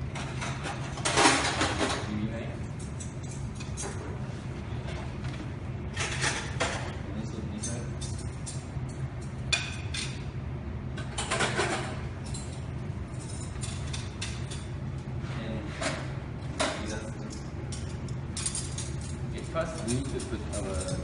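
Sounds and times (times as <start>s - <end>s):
tableware clattering on table: 11.0s - 12.6s.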